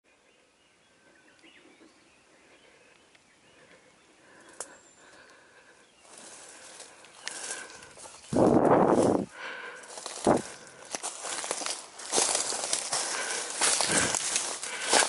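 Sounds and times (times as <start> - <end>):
faint bird calls: 0.1 - 8.5
footsteps rustling through dry leaves: 6.0 - 15.0.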